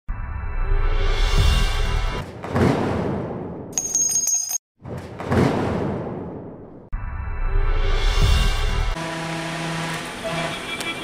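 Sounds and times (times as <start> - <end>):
high bell-like ring: 3.8 - 4.6.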